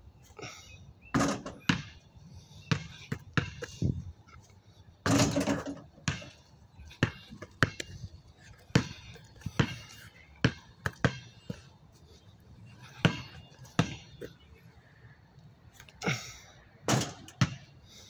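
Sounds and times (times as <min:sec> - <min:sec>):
basketball bouncing on asphalt: 0:01.1 - 0:04.0, 0:05.0 - 0:12.2, 0:12.8 - 0:14.5, 0:16.8 - 0:17.8
basketball rattling hoop rim: 0:05.1 - 0:05.9.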